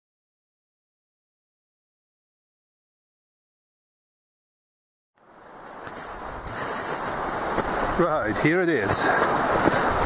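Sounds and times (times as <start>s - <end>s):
wind buffeting microphone: 5.3s - 10.0s.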